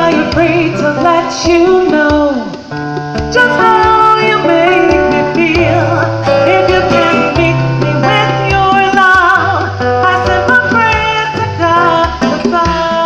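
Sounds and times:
acoustic guitar: 0:00.0 - 0:13.0
conga drums: 0:00.0 - 0:13.0
woman singing: 0:00.0 - 0:13.0.

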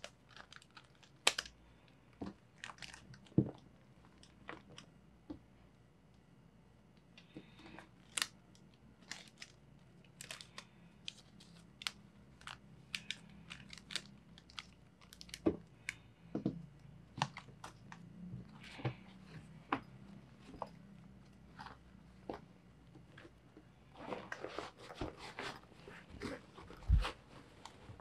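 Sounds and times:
paper banknotes crackling: 0:10.2 - 0:16.0.

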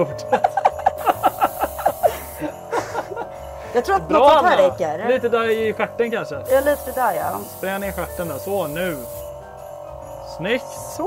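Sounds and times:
background music: 0:00.0 - 0:11.0
person chuckling: 0:00.3 - 0:03.3
airbrush spraying hiss: 0:00.8 - 0:02.7, 0:06.4 - 0:09.4.

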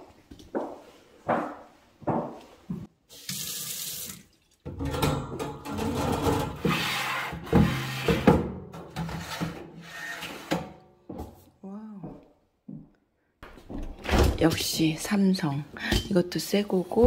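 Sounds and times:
water running into a metal sink: 0:03.1 - 0:05.7.

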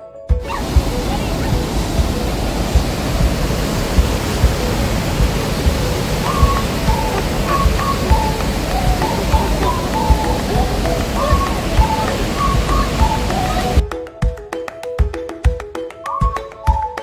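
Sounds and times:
whitewater rushing over falls: 0:00.4 - 0:13.8
low thumps: 0:00.4 - 0:13.9.

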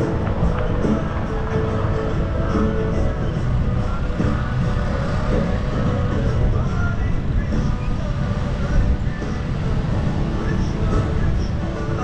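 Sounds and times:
city traffic rumble: 0:00.0 - 0:12.0
faint music: 0:00.0 - 0:12.0.

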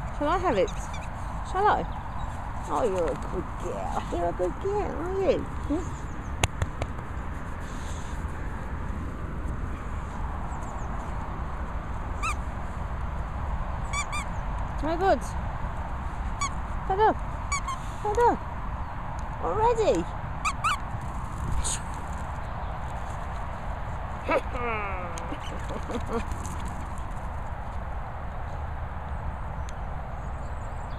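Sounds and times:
squeaky dog toy squeaking: 0:12.2 - 0:12.4, 0:13.9 - 0:14.3, 0:17.5 - 0:17.8, 0:20.4 - 0:20.8
wind on microphone: 0:19.8 - 0:24.1.

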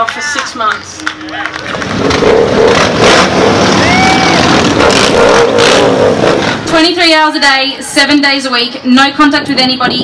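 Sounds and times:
motorcycles riding past: 0:01.4 - 0:06.9.

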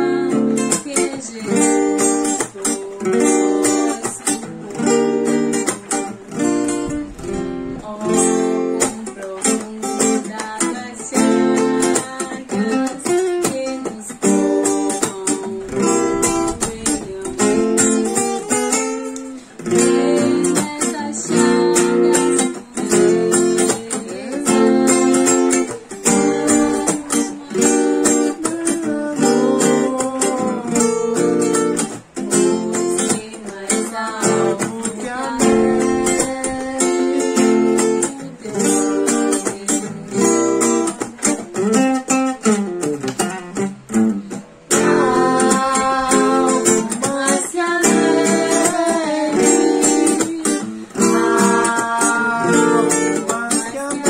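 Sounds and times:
acoustic guitar strummed: 0:00.0 - 0:54.0.

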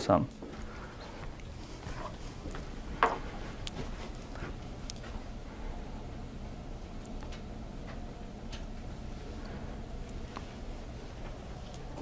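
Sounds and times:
soft indistinct noises: 0:00.0 - 0:12.0
steady low hum: 0:00.0 - 0:12.0.

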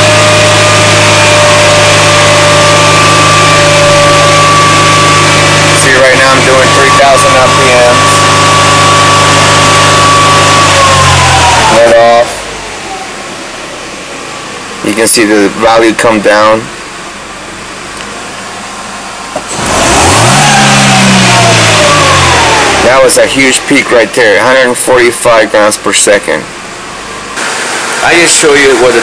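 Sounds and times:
car engine revving: 0:00.0 - 0:29.0
steady whine: 0:00.0 - 0:29.0.

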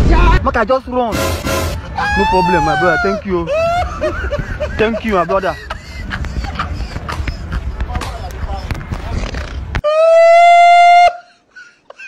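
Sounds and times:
loud horn-like tone: 0:01.1 - 0:02.0.

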